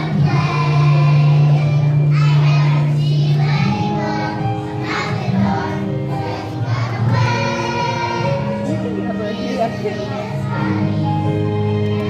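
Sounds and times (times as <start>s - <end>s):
children singing together: 0.0s - 11.6s
instrumental accompaniment: 0.0s - 12.0s.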